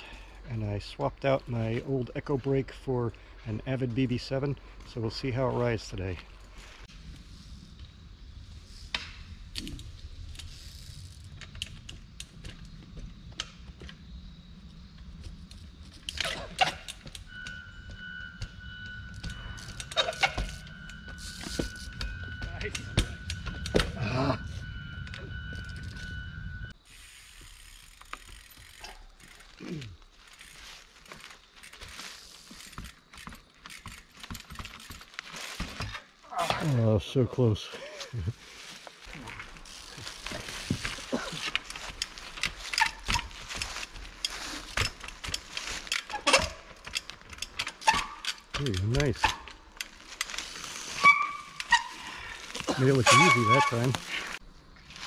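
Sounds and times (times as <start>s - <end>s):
steady high whine: 17.1s - 26.8s.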